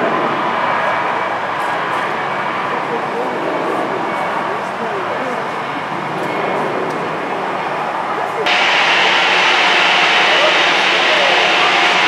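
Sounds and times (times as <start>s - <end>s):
jet engine taxiing: 0.0s - 12.0s
rushing airport noise: 0.0s - 12.0s
faint voices: 1.2s - 9.4s, 10.0s - 12.0s.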